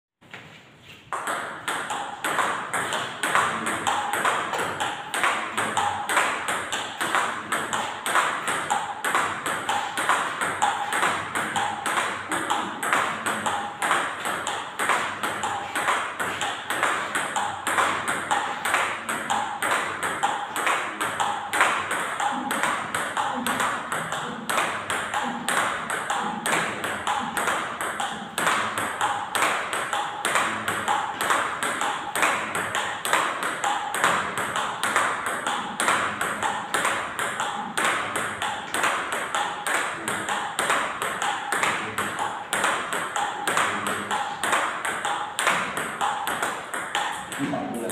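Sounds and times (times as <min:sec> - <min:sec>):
table tennis balls clicking off paddles: 0:01.0 - 0:47.6
balls bouncing on table: 0:01.1 - 0:47.9.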